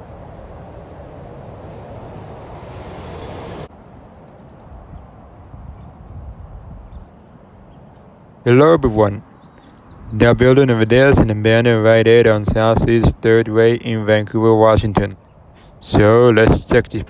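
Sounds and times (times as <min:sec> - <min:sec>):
road traffic: 0:00.0 - 0:17.0.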